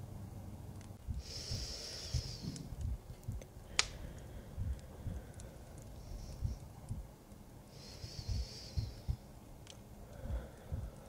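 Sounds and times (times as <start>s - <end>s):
crackling fireplace: 0.0s - 11.0s
heartbeat thumps: 1.0s - 7.2s, 7.9s - 9.3s, 10.1s - 11.0s
breathy hiss: 1.1s - 2.8s, 3.5s - 11.0s.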